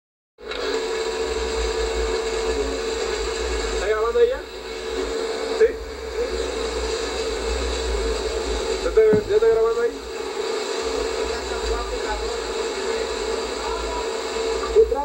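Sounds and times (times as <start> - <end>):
factory machinery hum: 0.4 - 15.0.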